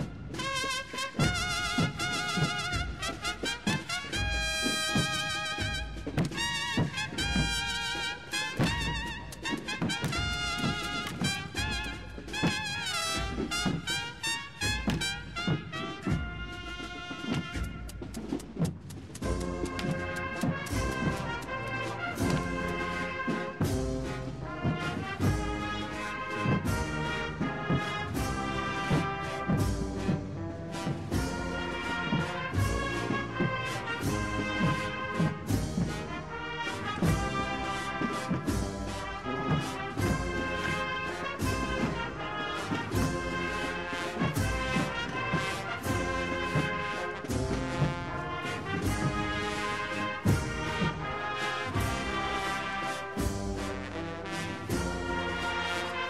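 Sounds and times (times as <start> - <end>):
brass band playing a march: 0.0 - 56.0
steady drum beat: 0.0 - 56.0.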